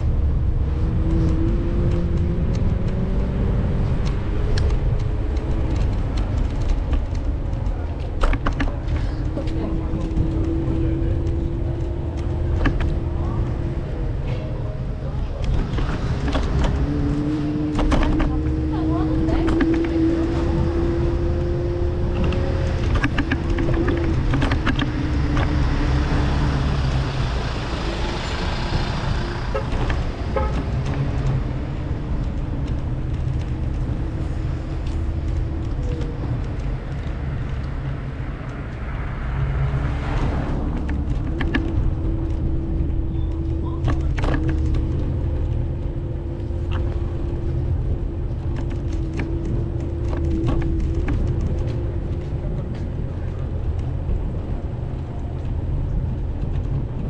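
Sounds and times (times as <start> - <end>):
city street noise: 0.0 - 57.0
low engine hum: 0.0 - 57.0.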